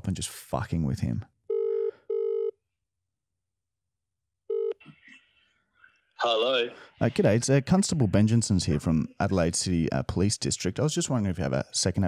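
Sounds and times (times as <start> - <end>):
telephone ringback buzzing tone: 1.5 - 2.5, 4.5 - 4.8.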